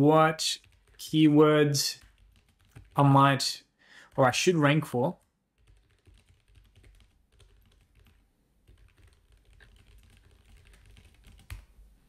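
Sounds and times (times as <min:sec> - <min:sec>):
faint computer keyboard typing: 0:00.6 - 0:01.2, 0:01.8 - 0:03.0, 0:05.1 - 0:11.8.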